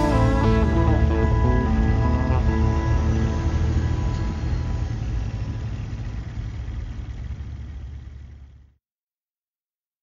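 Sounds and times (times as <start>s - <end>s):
outro music: 0.0s - 5.6s
low rumble: 0.0s - 8.5s.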